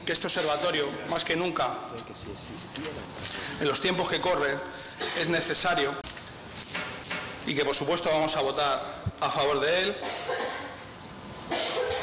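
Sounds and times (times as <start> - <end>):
man coughing: 5.0 - 5.5, 10.0 - 10.8, 11.5 - 12.0.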